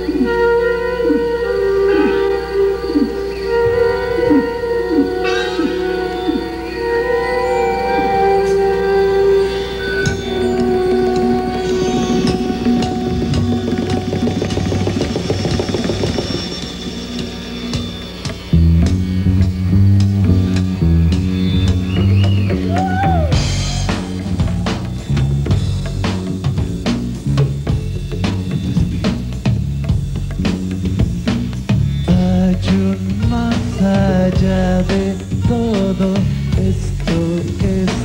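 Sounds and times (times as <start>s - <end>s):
sitar notes: 0.0s - 22.6s
rock band playing: 0.0s - 38.0s
drum hits: 10.1s - 36.0s.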